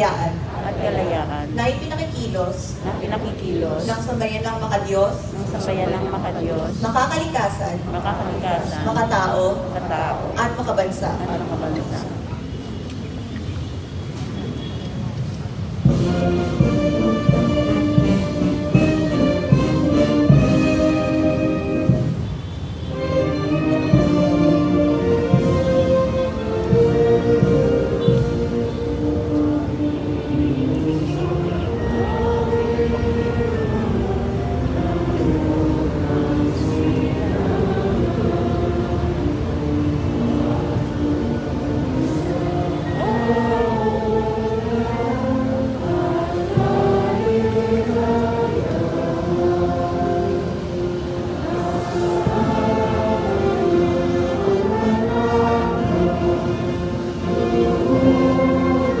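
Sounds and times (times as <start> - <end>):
low outdoor rumble: 0.0 - 12.7
faint murmur of voices: 0.0 - 16.4
brass band playing slowly: 15.6 - 59.0.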